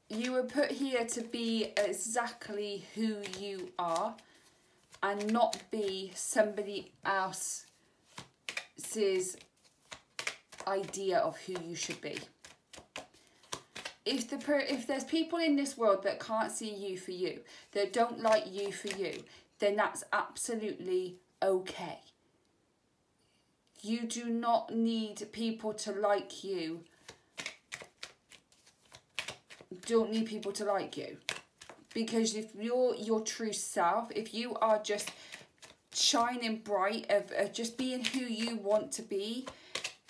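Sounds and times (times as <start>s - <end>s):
cards being shuffled: 0.0s - 15.2s, 17.9s - 19.2s, 26.9s - 32.5s, 33.5s - 40.0s.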